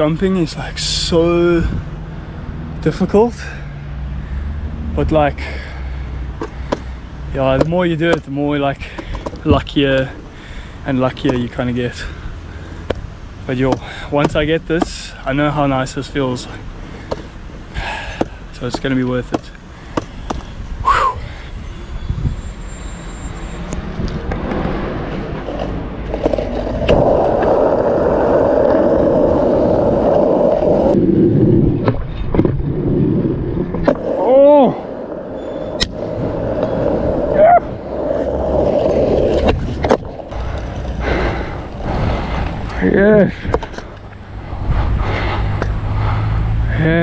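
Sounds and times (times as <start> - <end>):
skateboard wheels rolling on asphalt: 0.0 - 20.9, 23.3 - 47.0
skateboard clacks: 7.5 - 8.4, 17.1 - 17.3
person calling out: 34.1 - 34.9, 37.3 - 37.8.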